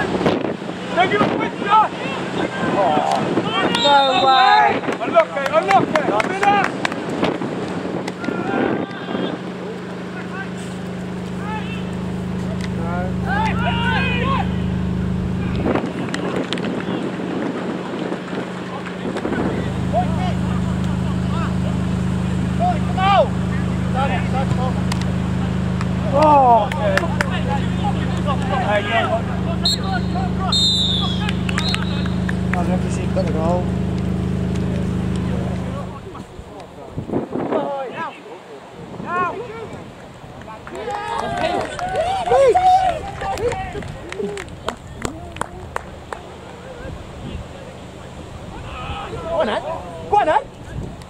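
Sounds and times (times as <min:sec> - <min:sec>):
distant shouts: 0:00.0 - 0:36.8, 0:37.6 - 0:51.0
low mechanical drone: 0:00.0 - 0:37.5, 0:38.7 - 0:51.0.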